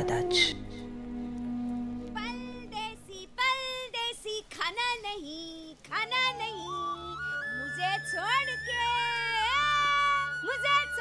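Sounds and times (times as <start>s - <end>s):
film music: 0.0s - 4.0s, 5.8s - 11.0s
held low music tone: 0.0s - 4.4s.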